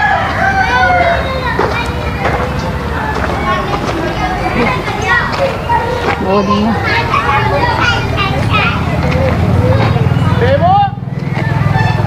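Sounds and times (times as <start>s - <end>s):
children calling and chattering: 0.0s - 12.0s
people's voices: 0.0s - 12.0s.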